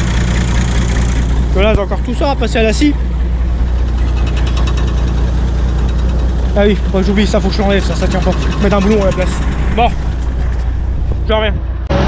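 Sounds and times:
tractor engine idling: 0.0 - 11.5.

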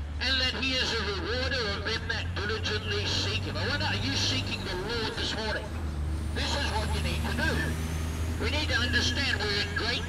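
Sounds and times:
vehicle engine drone: 0.0 - 10.0
man speaking: 0.2 - 5.7, 6.4 - 7.8, 8.4 - 10.0.

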